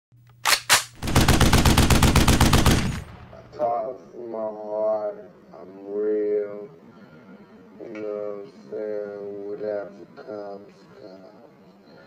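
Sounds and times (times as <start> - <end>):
automatic gunfire burst: 0.4 - 3.5
single gunshots: 0.5 - 3.7.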